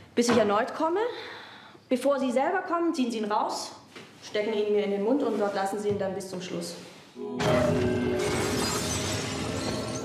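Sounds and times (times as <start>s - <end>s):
sustained music: 7.2s - 10.0s
porcelain figurine shattering: 8.2s - 10.0s.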